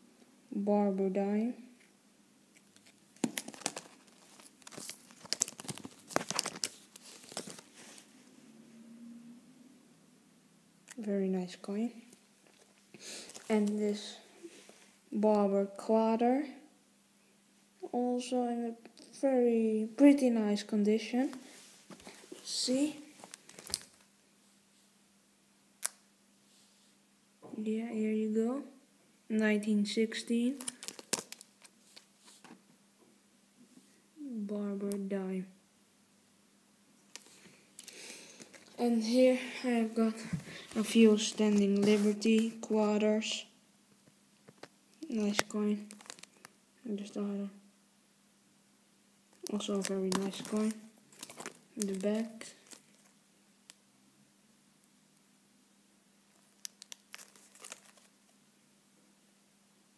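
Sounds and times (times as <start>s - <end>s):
plastic crinkling and clicking: 2.6s - 7.7s, 12.4s - 13.8s, 23.2s - 24.1s, 30.6s - 32.6s, 37.1s - 38.8s, 44.4s - 46.6s, 49.3s - 53.8s, 56.3s - 58.1s.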